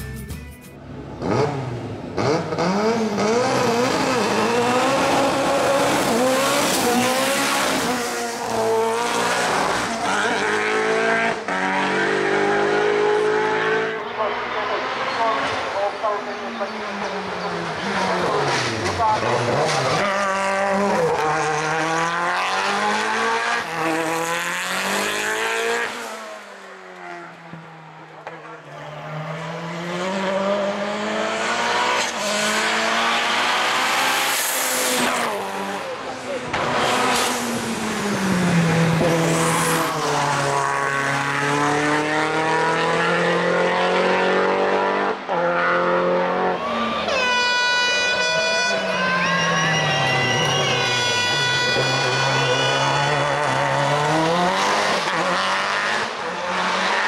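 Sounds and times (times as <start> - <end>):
race car engine accelerating: 1.1 - 46.9, 48.9 - 57.0.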